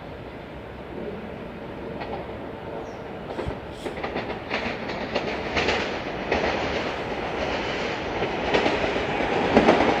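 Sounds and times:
train wheels clattering over rails: 1.8 - 10.0.

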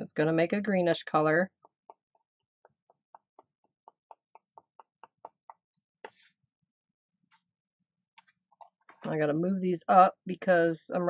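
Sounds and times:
paintbrush tapping on paper: 1.5 - 6.3.

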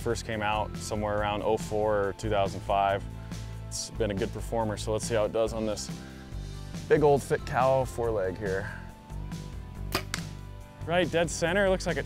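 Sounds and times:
arrow striking bone: 9.9 - 10.4
bow string crack: 9.9 - 10.4.

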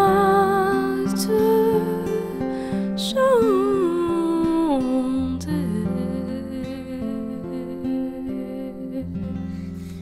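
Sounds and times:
plucked acoustic guitar: 0.0 - 10.0.

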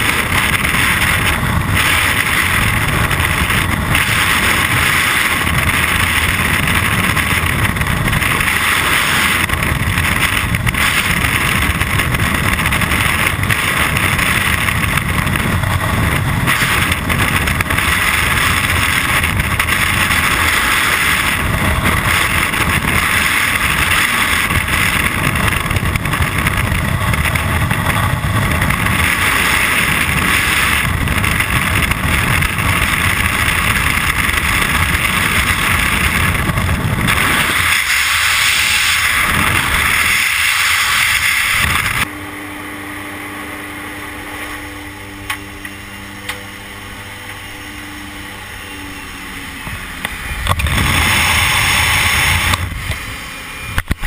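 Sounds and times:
wind rushing with low rumble: 0.0 - 54.0.

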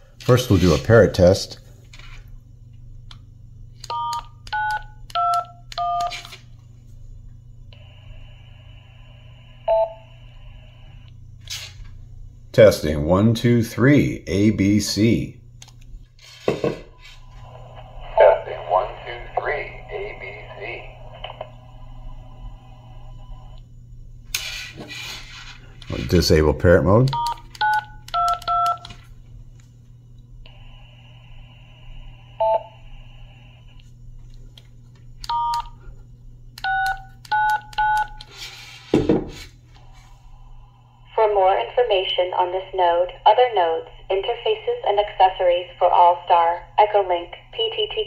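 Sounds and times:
radio hum and hiss: 0.0 - 2.4, 7.6 - 15.5, 16.3 - 27.4, 29.0 - 36.0, 38.4 - 48.0
keypad tones: 3.8 - 6.3, 27.1 - 29.0, 35.2 - 35.8, 36.6 - 38.3
radio noise hiss: 16.5 - 23.6, 41.0 - 48.0.

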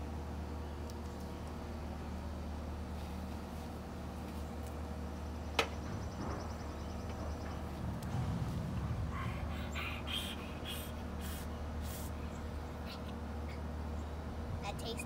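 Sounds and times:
short hissy breaths: 9.1 - 12.3.

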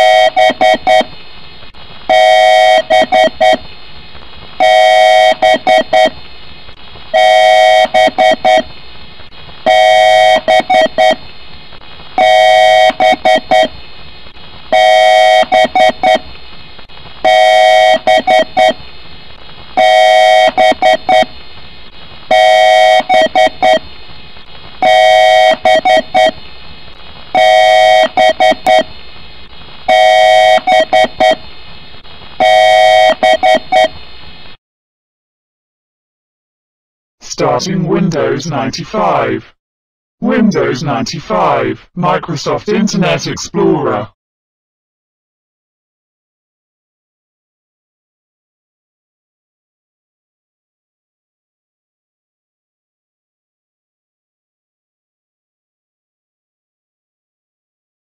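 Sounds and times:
electronic beeping: 0.0 - 1.1, 9.7 - 11.2, 22.3 - 23.8, 27.4 - 28.9, 29.9 - 31.4.

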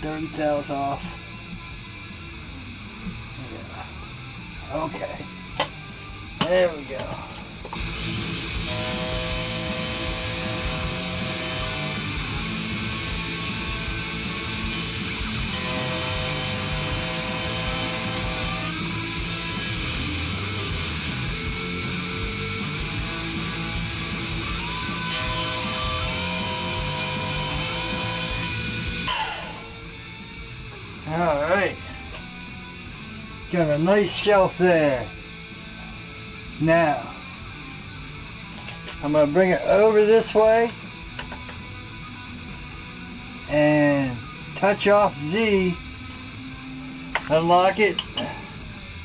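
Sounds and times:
milling cutter grinding steel: 7.8 - 29.7.

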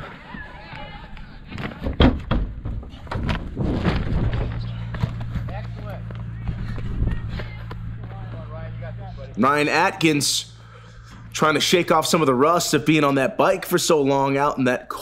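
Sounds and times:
steady low hum: 1.1 - 14.6.

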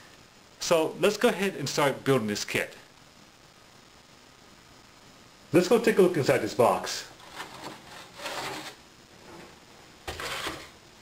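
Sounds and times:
cardboard lid scraping off box: 7.2 - 9.5, 10.1 - 10.8.

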